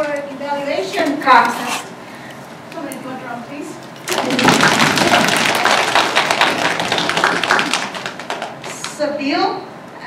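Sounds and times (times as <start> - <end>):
audience applauding: 4.0 - 9.0.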